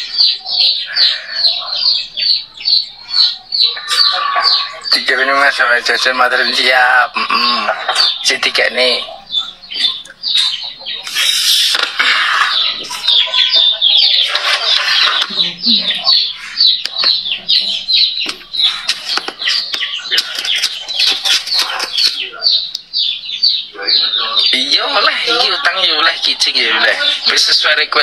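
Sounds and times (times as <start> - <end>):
birds chirping: 0.0 - 28.0
background voices: 11.0 - 18.0.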